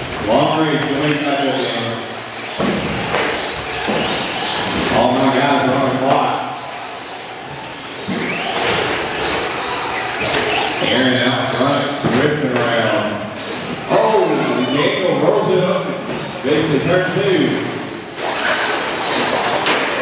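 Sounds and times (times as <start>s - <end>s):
voice over a loudspeaker: 0.2s - 2.2s, 4.8s - 6.7s, 10.8s - 17.9s
electric toy car motors whining: 0.8s - 12.0s, 13.0s - 15.3s, 16.2s - 20.0s.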